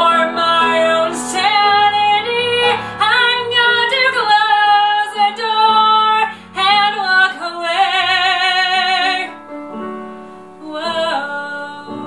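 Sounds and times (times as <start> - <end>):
person singing a ballad: 0.0 - 9.8, 10.5 - 12.0
instrumental accompaniment: 0.0 - 12.0.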